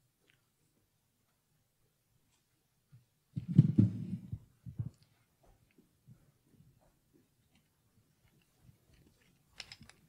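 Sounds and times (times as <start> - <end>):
microphone handling thumps: 3.4 - 5.0.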